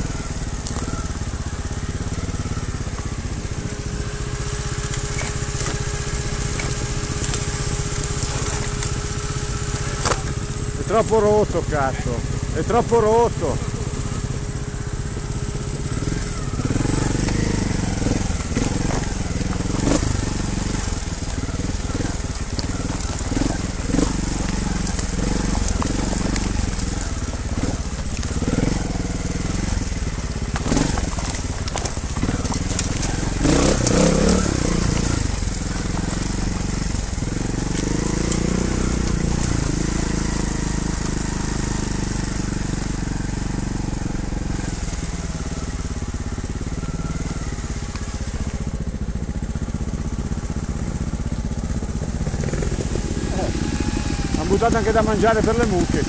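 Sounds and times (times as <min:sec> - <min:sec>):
motorcycle engine at low revs: 0:00.0 - 0:56.0
stones crunching under tyres: 0:00.0 - 0:56.0.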